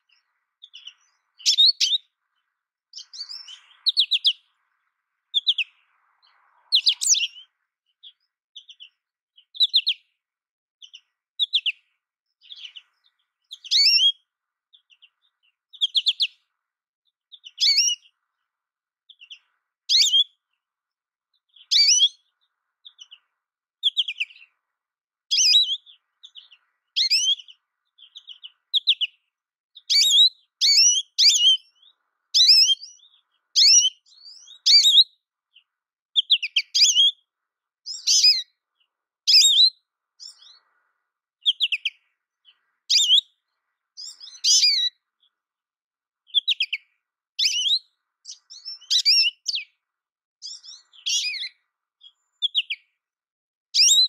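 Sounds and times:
bird twittering chirps: 0:00.0 - 0:10.2, 0:10.8 - 0:16.5, 0:17.3 - 0:18.2, 0:19.1 - 0:20.4, 0:21.3 - 0:24.6, 0:25.3 - 0:37.2, 0:37.9 - 0:45.4, 0:46.3 - 0:49.8, 0:50.4 - 0:53.0, 0:53.8 - 0:54.0.

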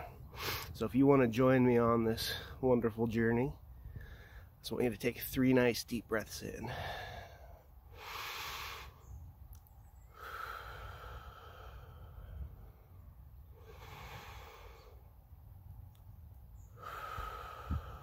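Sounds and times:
man breathing deeply: 0:00.0 - 0:00.8, 0:03.7 - 0:04.6, 0:06.6 - 0:09.2, 0:10.0 - 0:15.2, 0:16.6 - 0:18.0.

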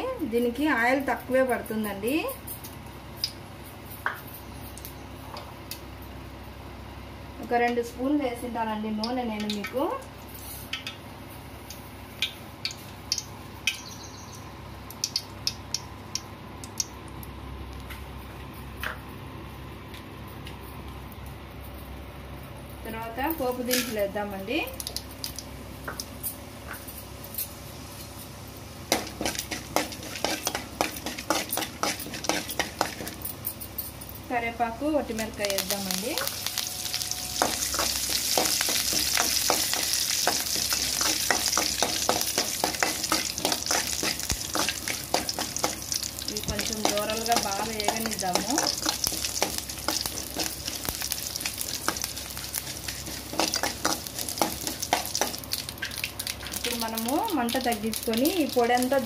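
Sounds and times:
steady low hum: 0:00.0 - 0:59.0
spices frying in oil: 0:07.4 - 0:17.9, 0:22.8 - 0:59.0
metal spoon scraping a pan: 0:29.2 - 0:33.2.

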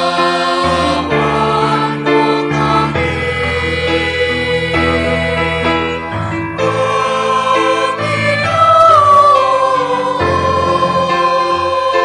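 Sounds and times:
church choir singing: 0:00.0 - 0:12.0.

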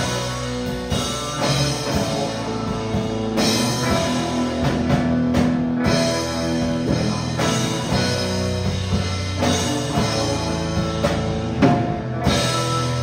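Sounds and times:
drum kit: 0:00.0 - 0:13.0
electric guitars: 0:00.0 - 0:13.0.

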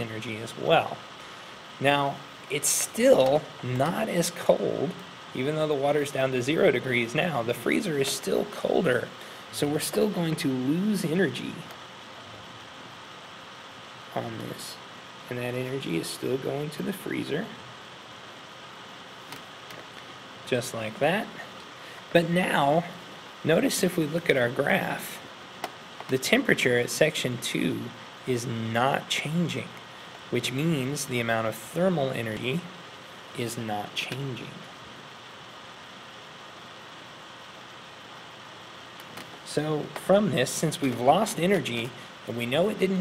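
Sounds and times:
room hiss: 0:00.0 - 0:43.0.

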